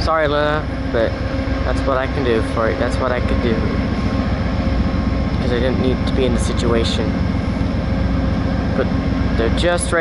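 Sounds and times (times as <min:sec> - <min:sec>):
diesel locomotive idling: 0:00.0 - 0:10.0.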